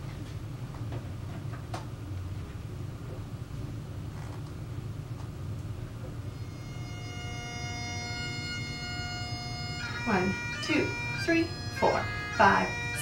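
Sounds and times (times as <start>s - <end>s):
low steady rumble: 0.0s - 13.0s
bagpipe band playing: 6.4s - 13.0s.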